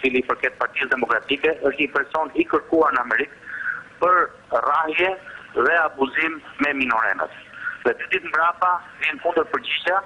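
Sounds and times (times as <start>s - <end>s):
man speaking over telephone: 0.0s - 3.4s, 4.0s - 10.0s.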